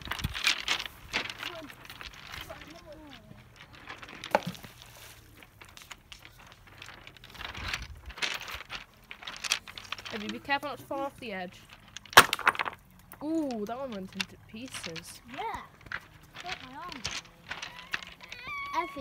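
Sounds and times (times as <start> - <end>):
pebbles crunching and clattering: 0.0 - 19.0.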